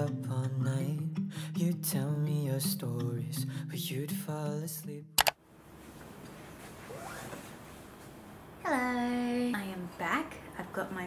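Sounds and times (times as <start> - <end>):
faint rustling and handling: 5.7 - 8.4.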